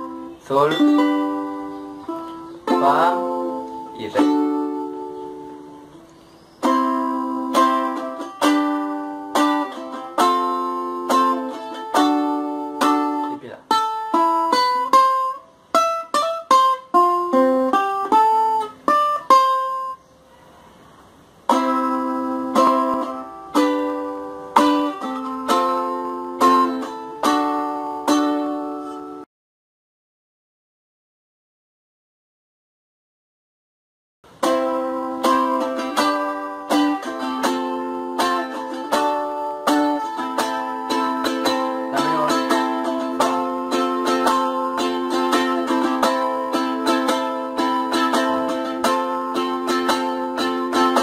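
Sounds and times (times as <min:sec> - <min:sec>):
ukulele strumming chords: 0:00.0 - 0:20.0, 0:21.3 - 0:29.3, 0:34.3 - 0:51.0
ukulele picked notes: 0:00.0 - 0:29.2, 0:34.3 - 0:51.0.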